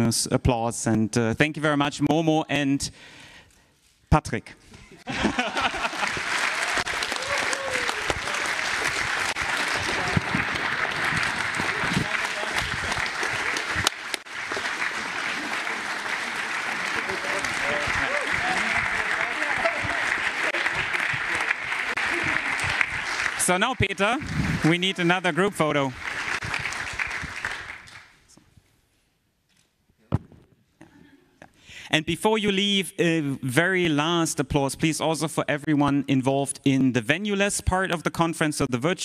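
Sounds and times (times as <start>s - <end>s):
large audience applauding: 5.1s - 28.2s.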